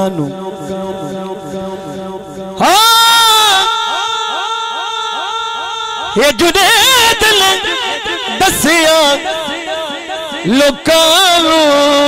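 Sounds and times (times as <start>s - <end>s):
echo repeats of voice: 0.0s - 12.0s
man singing a long note: 0.0s - 12.0s.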